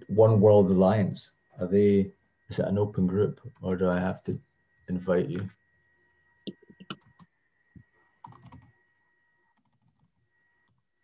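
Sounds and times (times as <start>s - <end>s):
faint computer keyboard typing: 6.5s - 8.8s, 9.5s - 10.9s.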